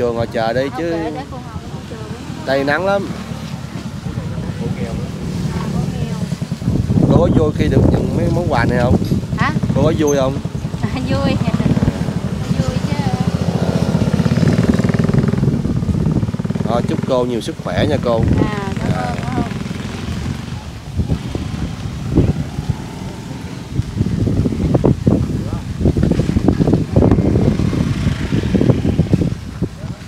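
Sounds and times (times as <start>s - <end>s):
motor scooter engine rumbling: 0.0s - 30.0s.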